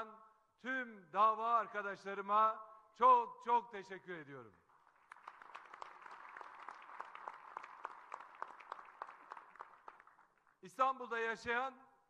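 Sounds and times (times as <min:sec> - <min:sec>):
audience applauding: 0:04.7 - 0:10.6.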